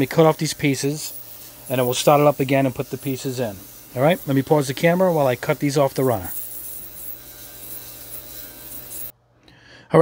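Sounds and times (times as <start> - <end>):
ultrasonic cleaner hissing and humming: 0.0 - 9.1.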